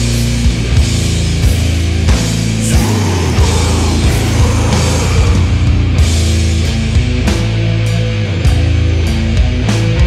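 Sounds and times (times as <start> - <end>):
distorted guitars and bass: 0.0 - 10.0
drums: 0.0 - 10.0.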